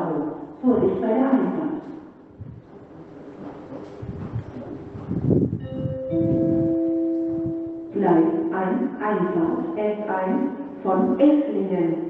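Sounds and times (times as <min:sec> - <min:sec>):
automated announcement voice: 0:00.0 - 0:01.8, 0:05.6 - 0:12.0
low rumbling noise: 0:02.2 - 0:12.0
two-note announcement chime: 0:05.6 - 0:11.1.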